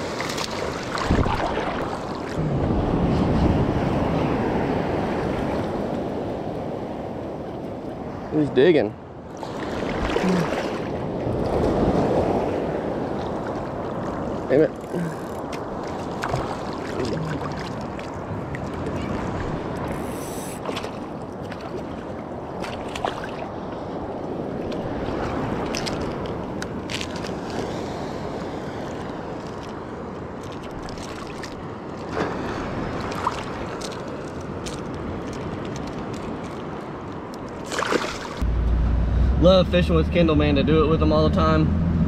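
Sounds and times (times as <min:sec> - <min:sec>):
surf washing around legs: 0:00.0 - 0:06.4, 0:09.3 - 0:38.4
water splashes: 0:00.0 - 0:06.8, 0:09.3 - 0:38.5
low vehicle rumble: 0:38.4 - 0:42.0.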